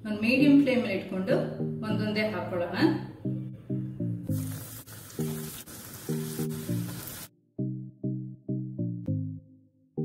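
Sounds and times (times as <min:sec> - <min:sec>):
rhythmic background music: 0:01.3 - 0:09.4
food sizzling in hot oil: 0:04.3 - 0:07.3.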